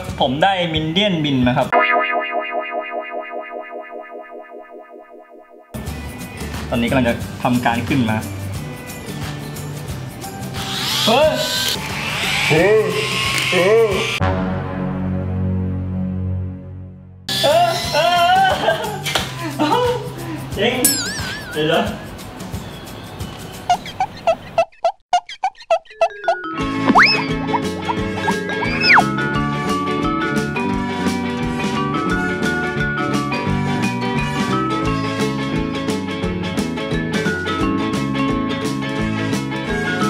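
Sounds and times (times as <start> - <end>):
cartoon pitch-bending blips: 1.7 - 5.8, 20.9 - 22.1, 25.2 - 29.2
distorted wobbling musical note: 1.8 - 5.7.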